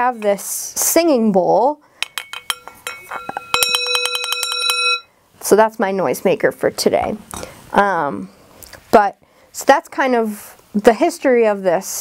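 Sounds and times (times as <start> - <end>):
wooden striker tapping singing bowl: 2.0 - 5.0
singing bowl ringing: 2.0 - 5.1.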